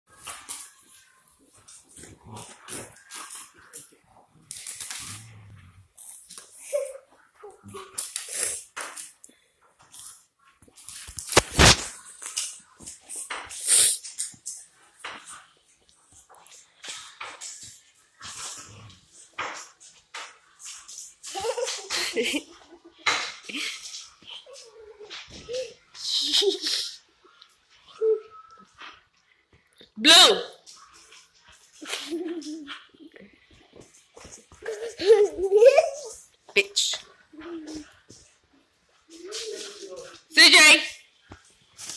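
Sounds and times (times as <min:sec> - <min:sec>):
dogs play-fighting: 0:00.1 - 0:10.9, 0:14.1 - 0:26.0
dog growling low: 0:05.0 - 0:05.9.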